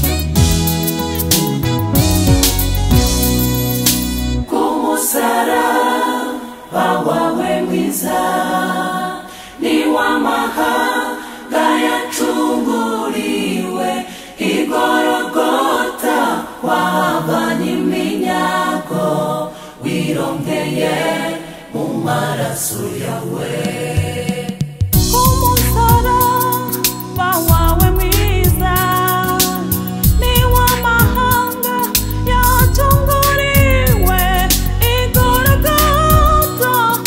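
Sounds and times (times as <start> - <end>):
band chord with heavy bass: 0.0 - 4.5, 25.0 - 31.4, 32.0 - 36.6
choir singing a hymn unaccompanied: 4.5 - 37.0.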